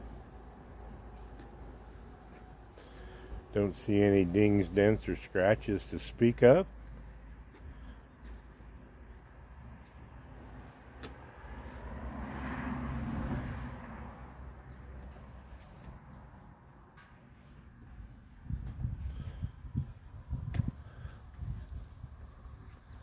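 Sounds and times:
low outdoor rumble: 0:00.0 - 0:23.0
motor vehicle passing: 0:09.8 - 0:20.4.

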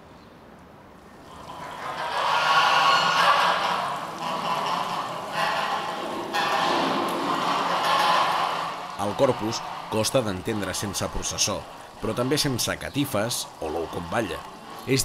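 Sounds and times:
geese honking and cackling: 0:01.2 - 0:15.0.

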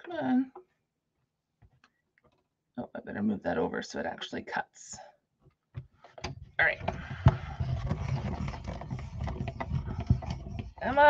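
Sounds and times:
hand-cranked die-cutting machine grinding: 0:06.9 - 0:11.0.

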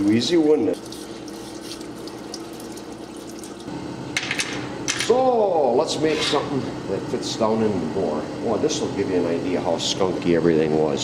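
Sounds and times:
faint pump hum: 0:00.0 - 0:11.0
liquid stream splashing on metal: 0:00.7 - 0:03.7.

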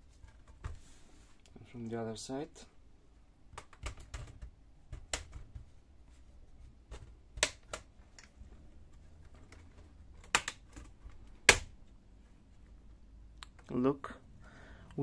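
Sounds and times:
plastic clips snapping: 0:06.9 - 0:08.4, 0:09.2 - 0:11.8.

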